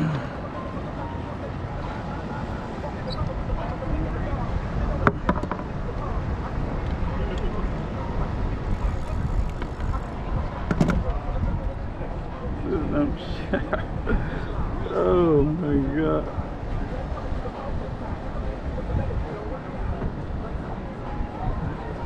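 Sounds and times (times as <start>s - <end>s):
people talking in background: 0.0s - 22.0s
wind rumble on microphone: 0.0s - 22.0s.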